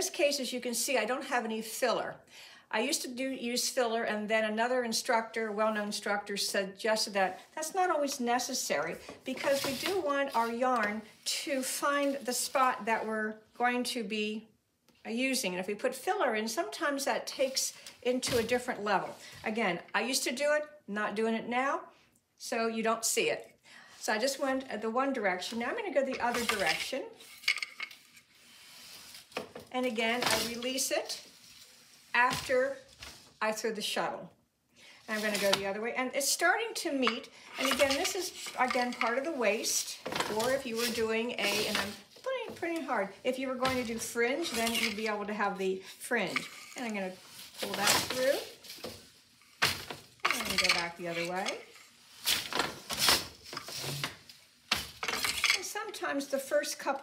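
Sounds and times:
loom rustling: 0:07.2 - 0:13.1, 0:25.2 - 0:33.5, 0:35.1 - 0:35.8, 0:36.4 - 0:55.9.

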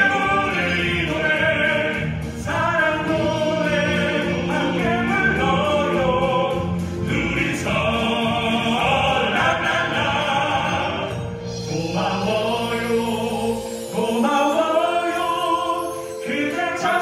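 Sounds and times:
male vocal ensemble singing ballad: 0:00.0 - 0:17.0.

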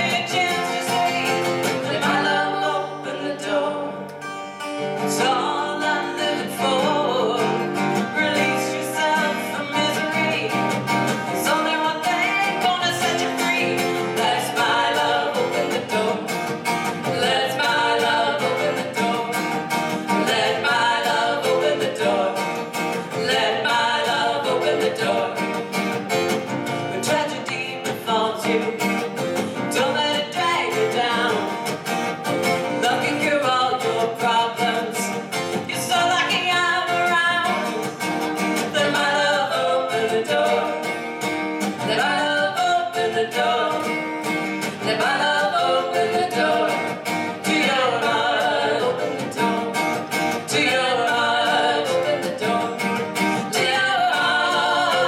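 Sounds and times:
women singing: 0:00.0 - 0:04.1, 0:04.8 - 0:55.0
acoustic guitar strummed: 0:00.0 - 0:55.0.

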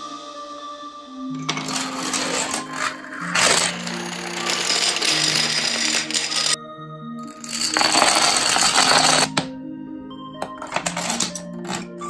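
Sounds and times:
background music: 0:00.0 - 0:12.0
toy dominoes clattering: 0:01.4 - 0:06.6, 0:07.3 - 0:09.5, 0:10.4 - 0:11.9.

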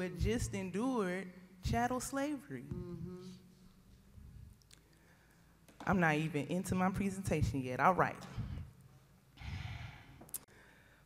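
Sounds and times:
woman speaking: 0:00.0 - 0:03.0, 0:05.8 - 0:08.6
woman breathing: 0:04.0 - 0:05.7, 0:08.3 - 0:11.0.

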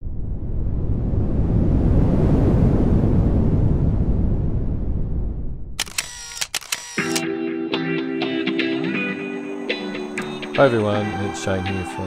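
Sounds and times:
deep rushing swell of noise: 0:00.0 - 0:05.8
camera shutter clicks: 0:05.8 - 0:07.2.

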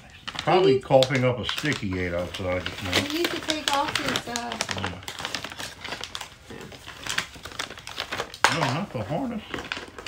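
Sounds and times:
light clicks and crinkles: 0:00.1 - 0:10.0.

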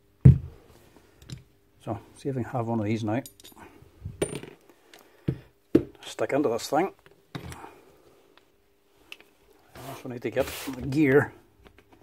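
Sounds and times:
metal parts clinking on concrete: 0:03.2 - 0:05.0.

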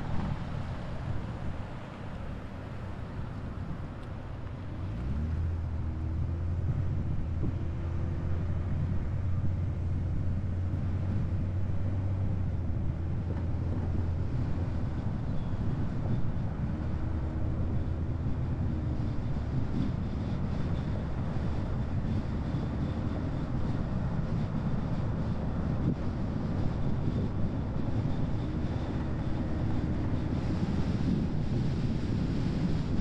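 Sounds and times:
car engine hum: 0:00.0 - 0:33.0
road and wind noise: 0:00.0 - 0:33.0.

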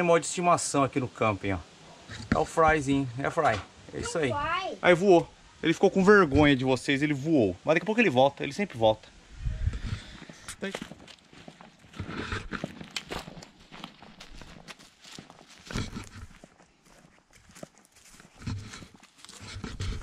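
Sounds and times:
footsteps crunching on pine needles: 0:10.0 - 0:20.0.

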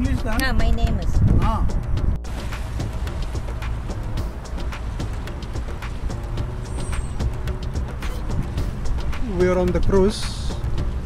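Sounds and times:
boat engine low rumble: 0:00.0 - 0:11.0.

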